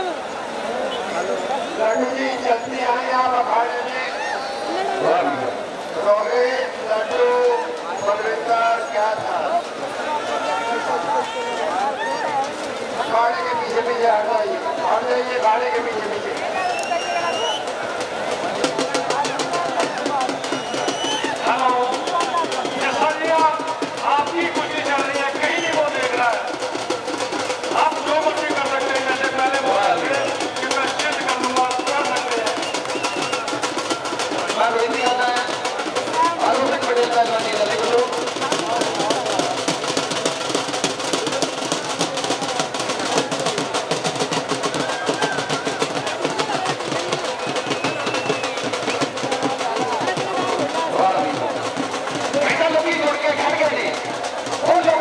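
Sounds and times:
fast drum roll: 6.6 - 55.0.

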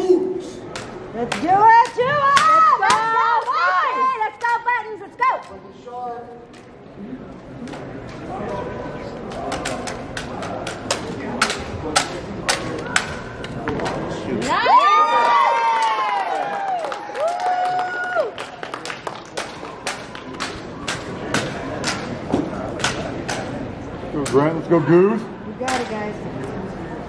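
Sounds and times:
spectators whooping and cheering: 14.5 - 18.8.

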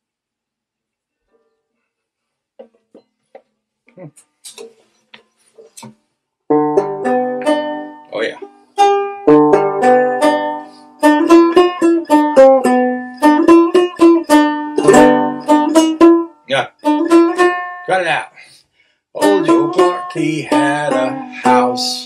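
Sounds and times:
banjo picking: 5.6 - 18.2, 19.2 - 22.0.

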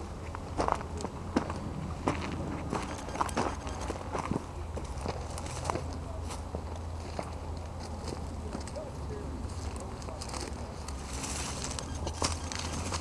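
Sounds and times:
footsteps through dry grass: 1.4 - 13.0.

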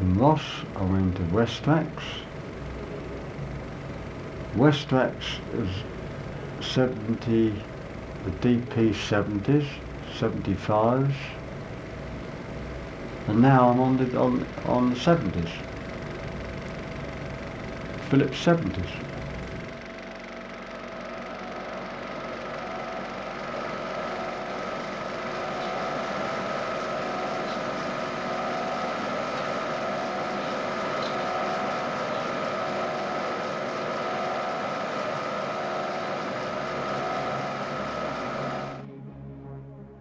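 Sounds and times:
film projector whirring: 0.0 - 38.9.

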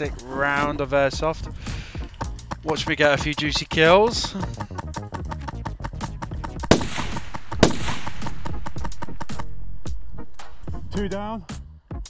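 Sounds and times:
music playing: 0.0 - 12.0
airsoft rifles firing: 6.7 - 11.2.

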